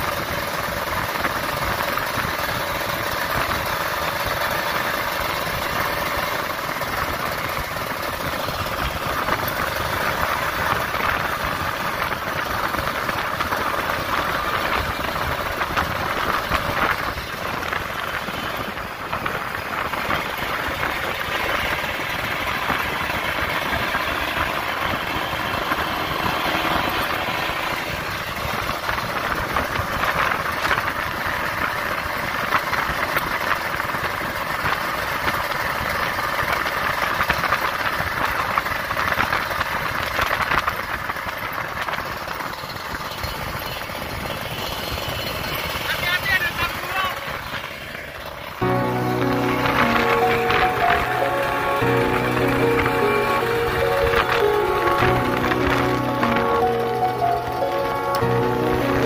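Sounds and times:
motorcycle engine cruising: 0.0s - 33.9s
road noise on wet road: 0.0s - 59.0s
wind noise: 7.0s - 26.5s.

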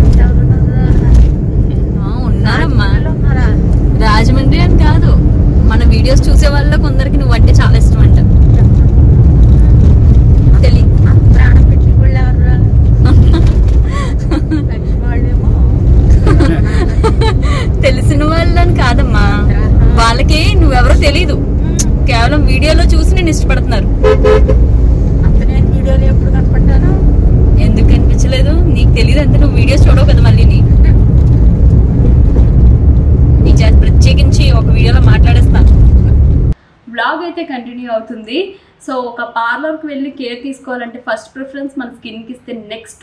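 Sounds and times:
women talking: 0.0s - 1.2s, 2.0s - 8.8s, 10.5s - 23.9s, 25.2s - 27.0s, 27.6s - 31.0s, 33.4s - 35.8s
car cabin road rumble: 0.0s - 36.6s
vehicle horn: 24.0s - 24.7s.

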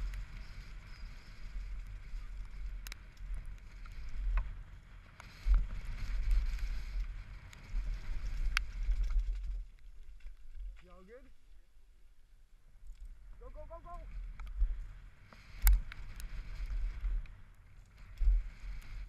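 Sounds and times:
bike clicks and rattles: 0.0s - 11.0s, 14.2s - 19.0s
bike rolling over dirt: 0.0s - 11.5s, 14.1s - 19.0s
person calling out: 13.4s - 14.1s.

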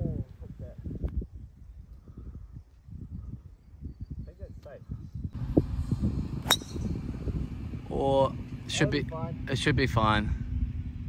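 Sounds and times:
low background rumble: 5.3s - 11.0s
golf club striking ball: 6.4s - 7.1s.

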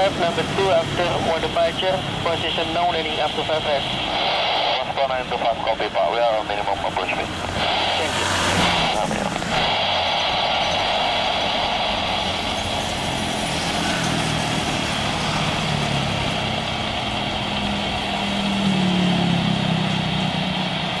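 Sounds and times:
jet engines rushing: 0.0s - 21.0s.

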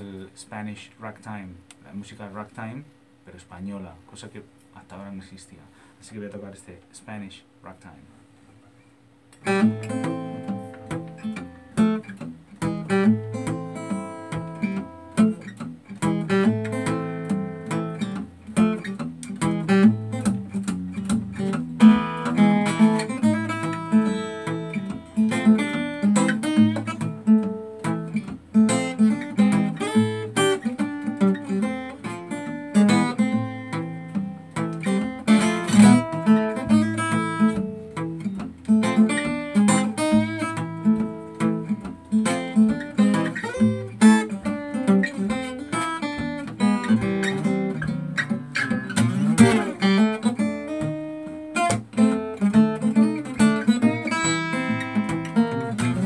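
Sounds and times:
fingerpicked acoustic guitar: 8.2s - 56.0s.

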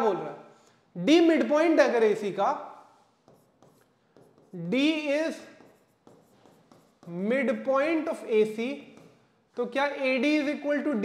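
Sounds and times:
stylus tapping and scratching screen: 3.0s - 9.8s.

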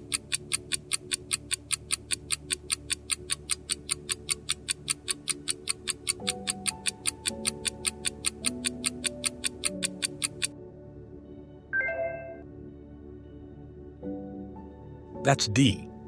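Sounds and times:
clock ticking: 0.0s - 10.5s
soft background music: 0.0s - 16.0s.

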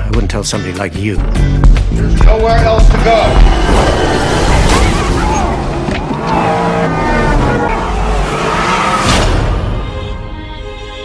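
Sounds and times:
music: 0.0s - 6.1s, 9.1s - 11.0s
tyres skidding: 2.5s - 10.2s
vehicle speeding: 2.9s - 9.9s.

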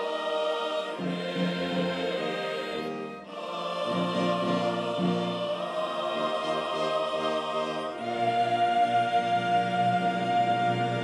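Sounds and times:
choir singing sustained chords: 0.0s - 11.0s.

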